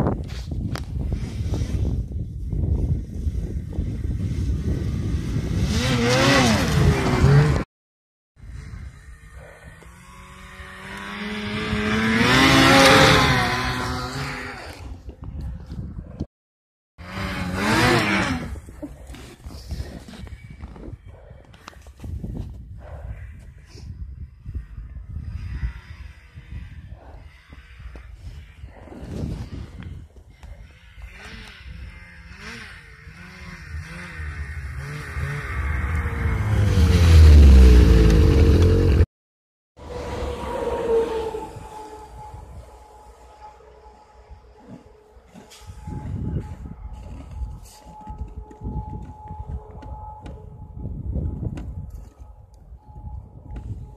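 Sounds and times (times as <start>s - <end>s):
snowmobile engine passing: 3.0s - 7.7s, 8.6s - 14.9s, 17.0s - 19.4s, 25.3s - 29.6s, 30.6s - 39.1s, 39.8s - 47.8s
snowmobile idling: 30.7s - 39.0s.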